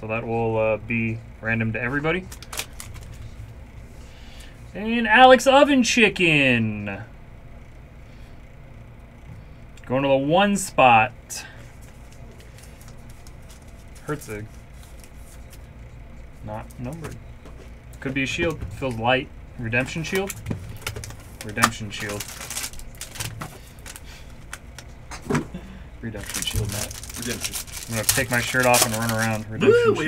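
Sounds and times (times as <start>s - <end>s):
low steady hum: 0.0s - 30.0s
card packs and foil rustling: 2.0s - 4.6s, 11.5s - 15.8s, 19.7s - 25.0s, 26.0s - 29.6s
card taps and rustles: 26.2s - 29.4s.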